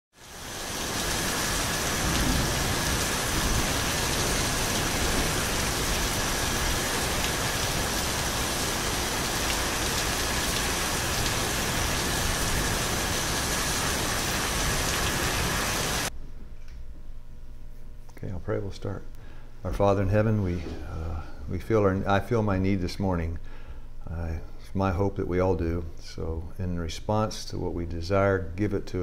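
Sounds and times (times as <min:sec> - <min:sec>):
dense hiss with crackles: 0:00.2 - 0:16.1.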